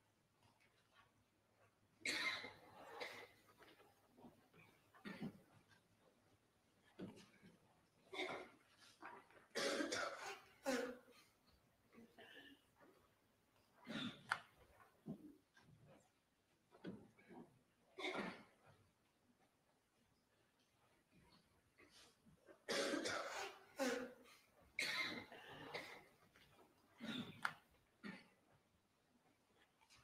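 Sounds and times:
woman coughing: 9.6s - 11.1s, 22.7s - 24.2s.

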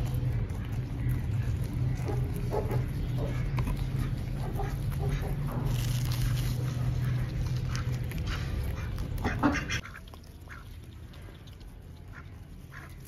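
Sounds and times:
steady low hum: 0.0s - 13.0s
ducks quacking: 0.9s - 5.8s, 6.5s - 10.8s, 12.0s - 13.0s.

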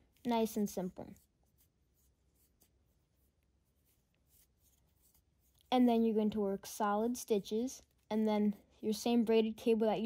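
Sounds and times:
crochet hook pulling yarn: 0.0s - 6.0s.

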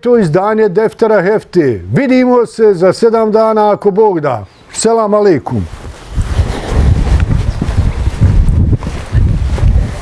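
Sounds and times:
wind buffeting microphone: 5.7s - 10.0s.

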